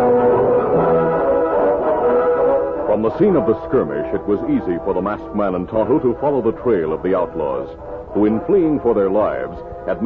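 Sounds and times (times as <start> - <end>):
orchestral brass chords: 0.0 - 10.0.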